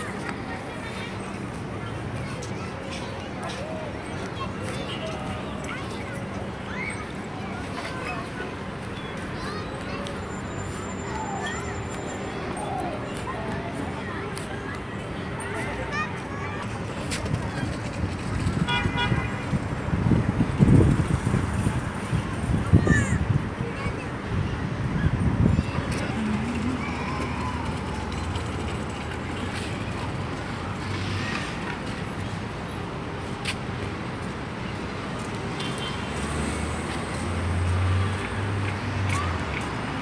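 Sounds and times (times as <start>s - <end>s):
passing vehicles hum: 0.0s - 40.0s.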